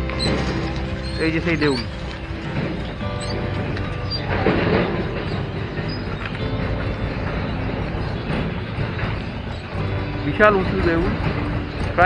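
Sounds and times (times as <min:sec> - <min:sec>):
vehicle rumble and rattle: 0:00.0 - 0:12.0.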